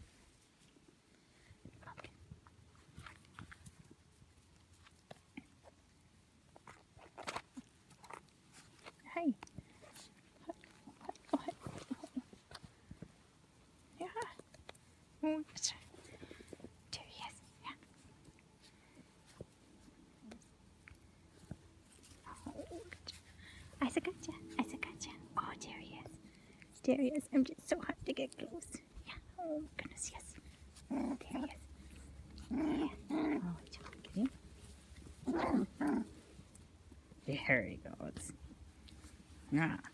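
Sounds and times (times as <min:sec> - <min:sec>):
puppy whining: 0:09.6 - 0:12.6, 0:21.8 - 0:23.6, 0:29.2 - 0:36.3.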